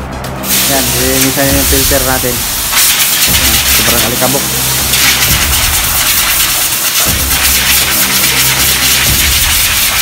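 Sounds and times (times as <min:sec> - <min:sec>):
background music with beat: 0:00.0 - 0:10.0
compressed air hissing: 0:00.4 - 0:10.0.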